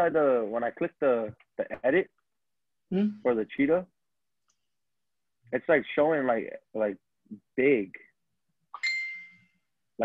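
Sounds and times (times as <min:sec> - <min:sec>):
electronic ding: 0:08.8 - 0:09.6.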